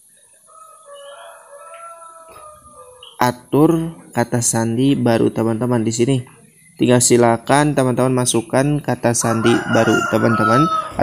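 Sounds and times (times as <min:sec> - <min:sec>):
distant rooster crowing: 0:00.4 - 0:03.2, 0:09.1 - 0:11.0.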